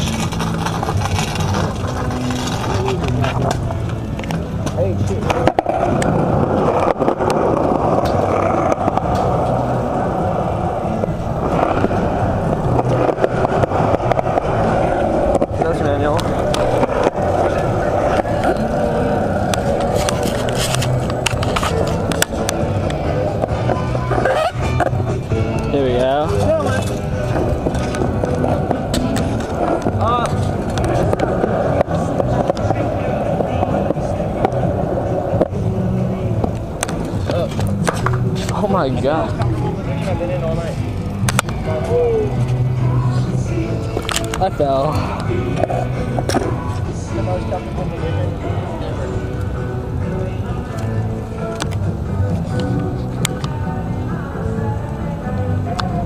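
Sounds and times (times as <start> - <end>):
skateboard wheels rolling on pavement: 0.0 - 56.0.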